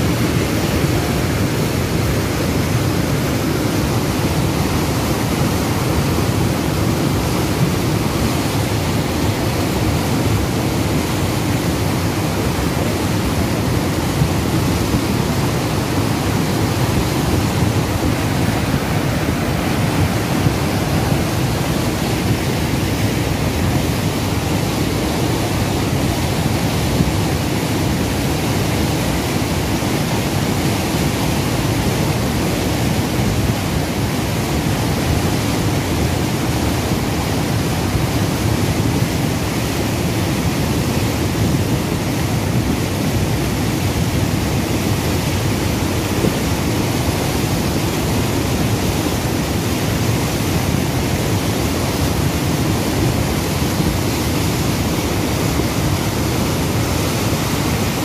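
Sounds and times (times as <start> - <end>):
muddy flood water rushing: 0.0 - 58.0.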